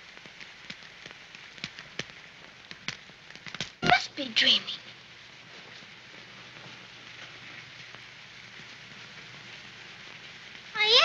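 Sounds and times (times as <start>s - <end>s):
steady soft hiss: 0.0s - 11.0s
girl exclaiming: 3.8s - 4.8s, 10.8s - 11.0s.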